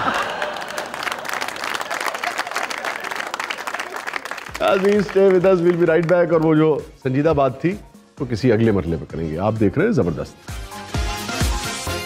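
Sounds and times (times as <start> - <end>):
audience applauding: 0.0 - 6.6.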